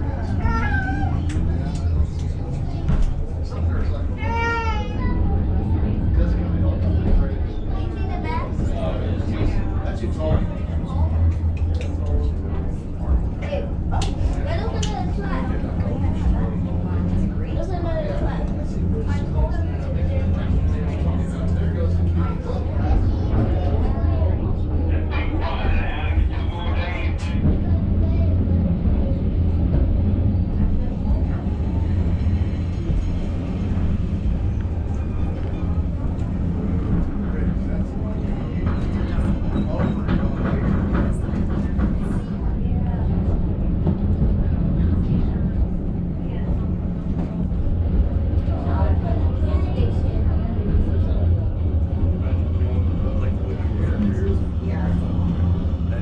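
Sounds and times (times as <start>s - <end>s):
passengers talking: 0.0s - 56.0s
railway car rumbling on track: 0.0s - 56.0s.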